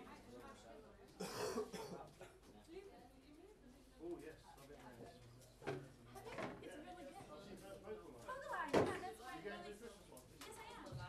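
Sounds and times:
person coughing: 1.2s - 2.0s.

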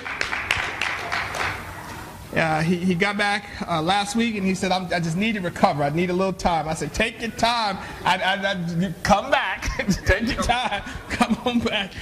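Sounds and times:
people applauding: 0.0s - 1.9s.

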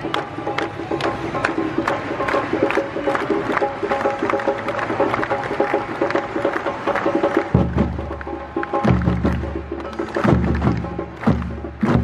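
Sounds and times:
samba drums playing: 0.0s - 12.0s.

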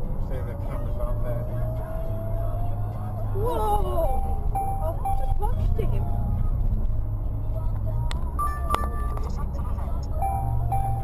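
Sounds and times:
vehicle driving at speed rumble: 0.0s - 11.0s
short beeps: 4.0s - 6.1s, 8.4s - 9.2s, 10.2s - 11.0s.

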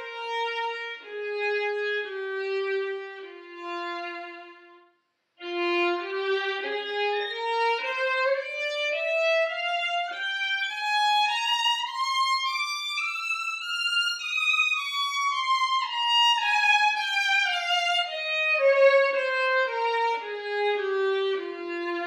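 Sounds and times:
violin playing a scale: 0.0s - 22.0s.

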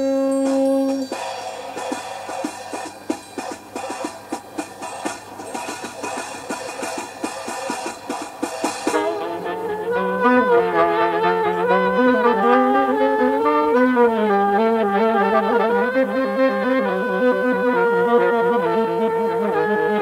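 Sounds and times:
percussive strikes: 0.0s - 9.5s
held horn note: 0.0s - 20.0s
several horns playing together: 0.0s - 20.0s.

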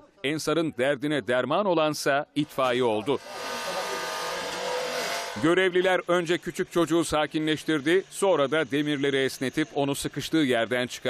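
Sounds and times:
hydraulic spreader running: 3.2s - 5.6s.

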